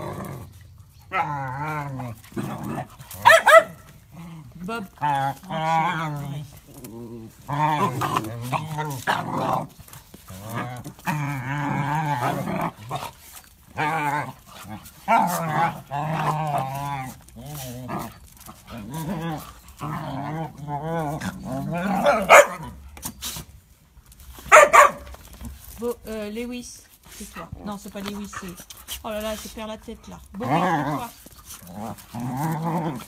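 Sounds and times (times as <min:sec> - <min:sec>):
dogs growling: 0:00.0 - 0:23.4, 0:27.4 - 0:33.0
dog barking sharply: 0:24.5 - 0:25.0.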